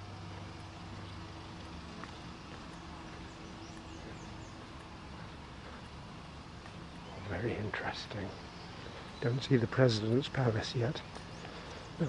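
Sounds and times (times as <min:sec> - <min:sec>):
distant traffic hum: 0:00.0 - 0:12.0
faint bird chirps: 0:00.0 - 0:12.0.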